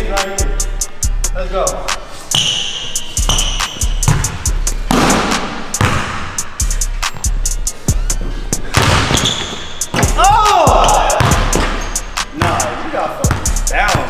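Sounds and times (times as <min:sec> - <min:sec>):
music with steady beat: 0:00.0 - 0:14.0
basketball bouncing on hardwood: 0:03.3 - 0:06.3, 0:08.6 - 0:10.2, 0:11.2 - 0:11.8, 0:13.3 - 0:14.0.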